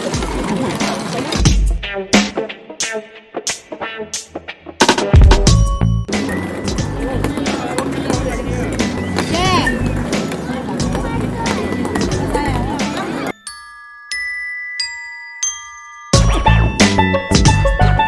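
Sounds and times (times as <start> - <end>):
crowd chatter: 0.0 - 1.7, 6.1 - 13.5
music with steady beat: 1.4 - 13.2, 16.0 - 18.0
clear ringing notes: 13.3 - 17.2.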